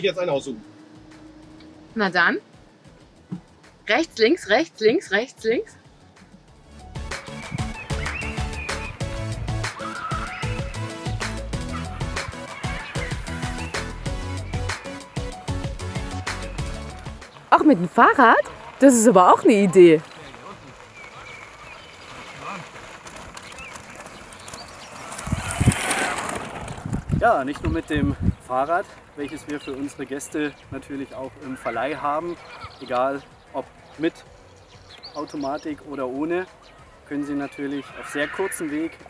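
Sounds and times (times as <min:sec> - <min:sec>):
low thumps: 0:00.0 - 0:03.9
music with a steady beat: 0:00.7 - 0:03.9, 0:05.8 - 0:17.4
bicycle tyres crunching on gravel: 0:16.6 - 0:39.0.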